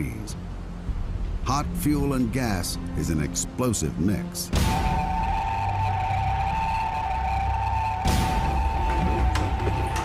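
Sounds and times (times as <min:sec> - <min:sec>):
tense music with pulsing low notes: 0:00.0 - 0:10.0.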